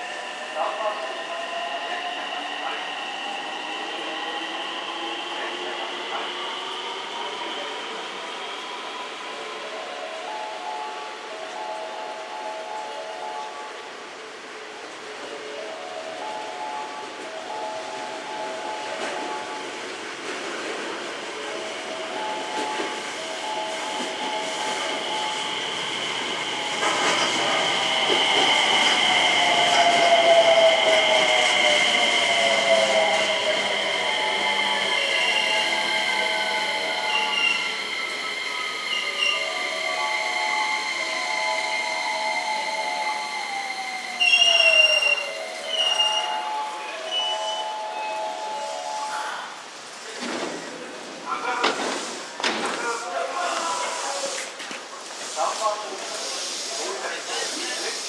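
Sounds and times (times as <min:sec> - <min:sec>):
train wheels squealing on rails: 0:21.6 - 0:50.8.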